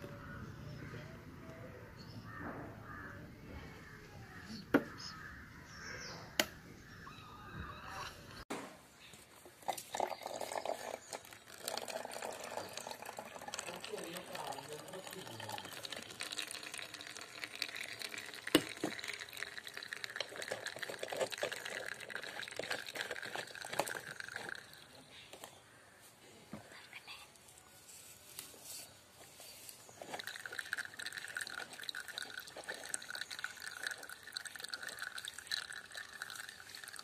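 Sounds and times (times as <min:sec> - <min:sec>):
faint voices: 0:00.0 - 0:06.4
water trickling into paper cup: 0:09.6 - 0:25.9, 0:29.7 - 0:37.0.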